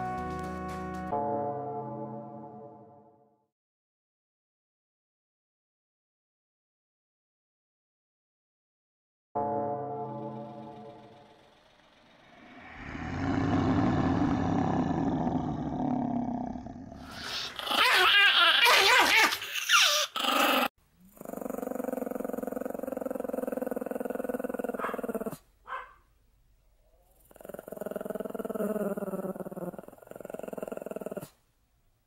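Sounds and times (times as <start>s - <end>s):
dog growling and snarling: 11.6s - 18.1s, 20.0s - 25.5s, 27.1s - 31.4s.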